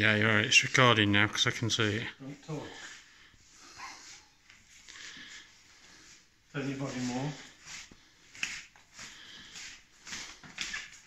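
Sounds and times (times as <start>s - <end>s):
clothing rustle: 2.2s - 11.0s
faint breathing: 2.5s - 6.4s, 7.2s - 10.5s.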